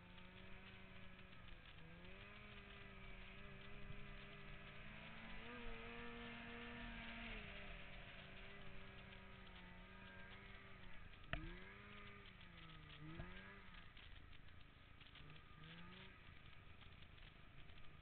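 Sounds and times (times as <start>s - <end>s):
snowmobile engine revving: 0.0s - 14.4s, 15.0s - 18.0s.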